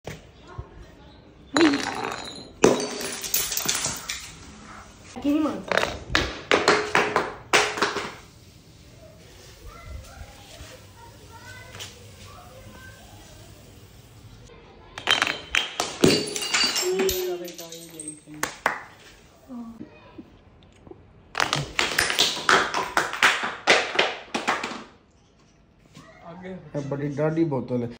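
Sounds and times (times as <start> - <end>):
glass bottle smashing on concrete: 1.5 - 4.5, 5.7 - 8.3, 15.0 - 18.9, 21.4 - 23.3
glass pieces clinking: 1.6 - 4.5, 15.0 - 18.6.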